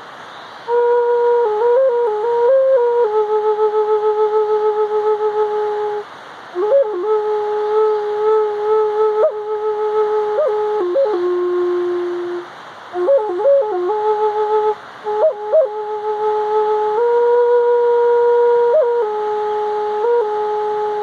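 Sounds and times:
flute playing slow melody: 0.6 - 21.0.

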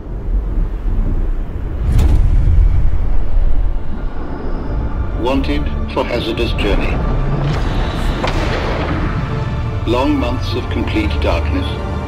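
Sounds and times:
deep cinematic rumble: 0.0 - 11.7.

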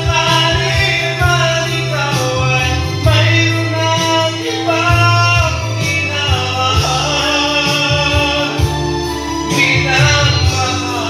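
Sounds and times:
man singing into microphone: 0.0 - 11.0
music backing track: 0.0 - 11.0.

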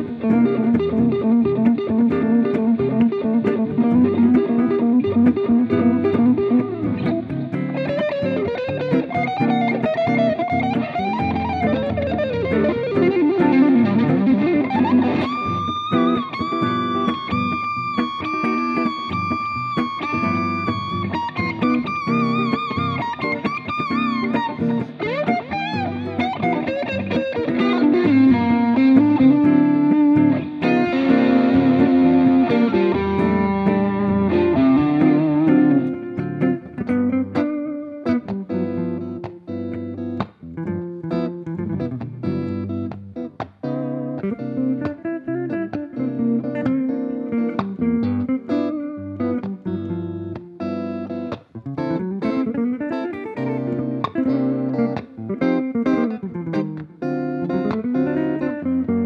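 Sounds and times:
electric guitar solo: 0.0 - 59.0.

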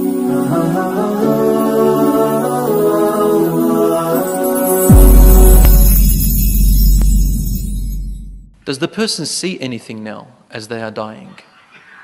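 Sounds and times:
deep low boom: 4.9 - 8.6.

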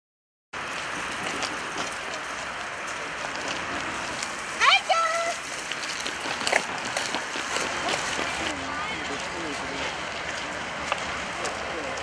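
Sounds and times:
outdoor background noise: 0.6 - 12.0.

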